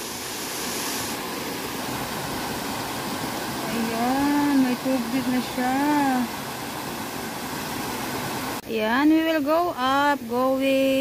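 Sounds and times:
stream rushing over rocks: 0.0s - 8.6s.

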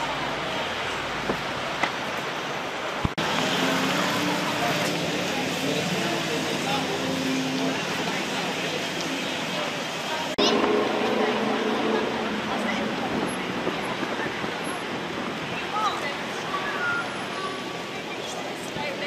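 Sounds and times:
traffic noise: 0.0s - 19.0s
indistinct chatter: 2.4s - 19.0s.

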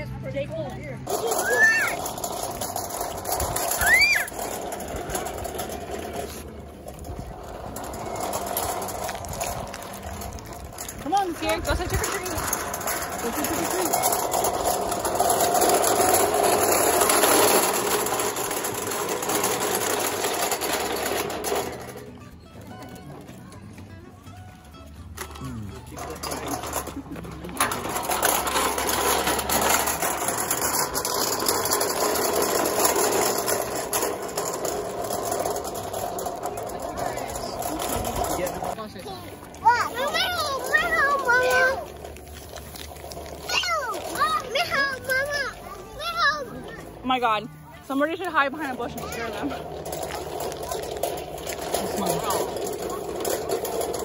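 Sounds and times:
metal toy wagon rattling: 0.0s - 23.8s, 24.4s - 54.0s.

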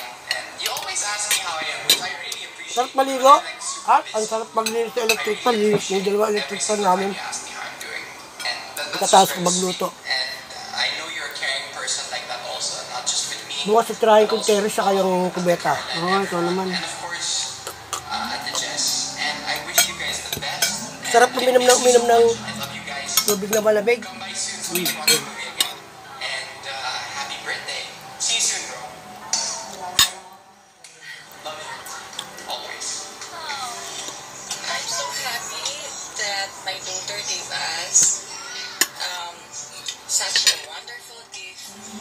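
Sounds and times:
cutlery clinking on ceramic plate: 17.6s - 22.0s, 22.6s - 23.7s, 24.6s - 25.8s.

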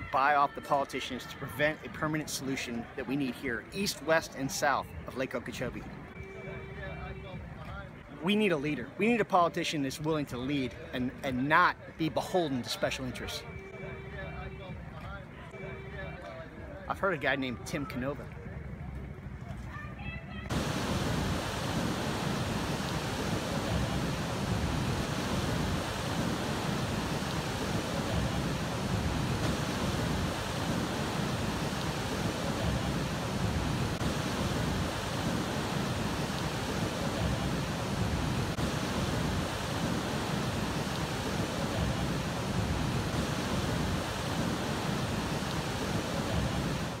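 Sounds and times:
wind: 0.0s - 47.0s
churning water: 20.5s - 47.0s.

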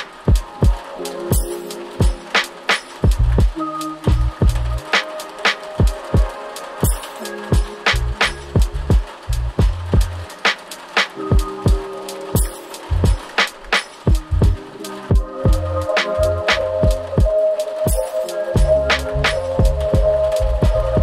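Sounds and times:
chill hip hop beat: 0.0s - 21.0s
held chord tones: 0.0s - 21.0s
deep bass line: 3.1s - 3.5s, 4.1s - 4.8s, 8.0s - 10.3s, 14.2s - 14.6s, 15.4s - 17.2s, 18.6s - 21.0s.

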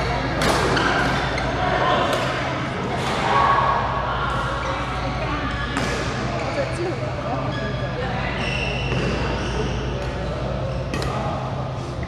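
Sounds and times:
distant chatter: 0.0s - 12.0s.

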